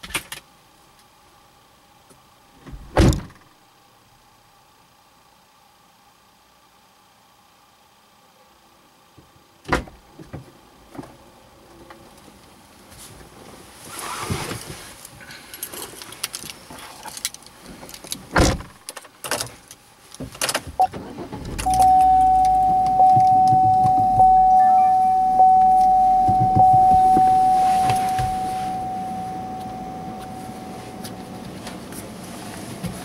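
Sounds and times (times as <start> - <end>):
car warning chime dinging: 21.6 - 31.4
knocks: 26.2 - 27.3.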